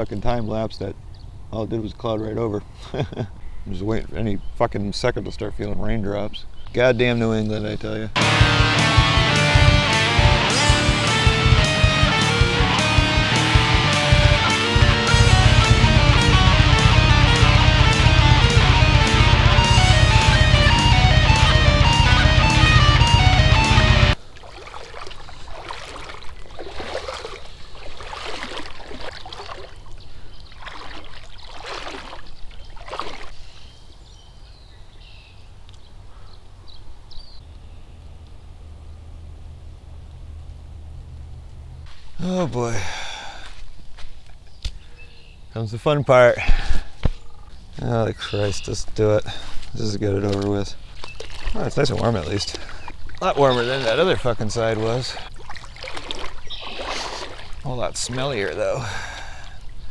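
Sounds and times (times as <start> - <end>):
quiet outdoor background: 0.0 - 59.9
loud guitar music: 8.2 - 24.2
person wading through shallow water: 24.2 - 33.8, 49.4 - 59.9.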